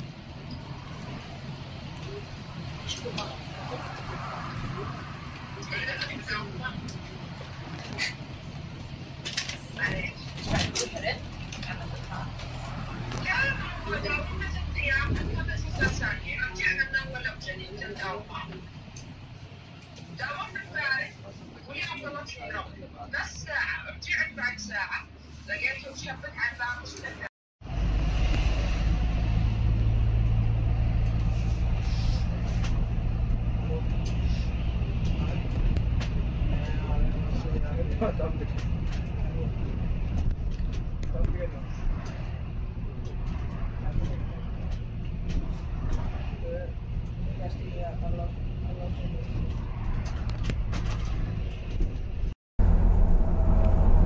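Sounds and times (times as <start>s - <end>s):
bus engine humming: 0.0s - 54.0s
people talking: 5.6s - 7.0s, 9.8s - 12.4s, 13.1s - 18.6s.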